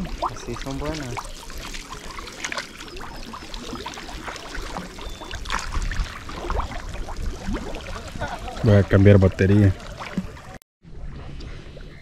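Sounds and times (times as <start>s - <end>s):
water trickling: 0.0s - 10.6s
water sloshing and splashing: 0.0s - 12.0s.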